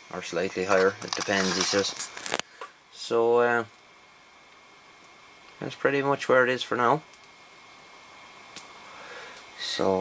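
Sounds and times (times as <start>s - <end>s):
thin high whine: 0.0s - 2.4s
faint steady hiss: 0.0s - 10.0s.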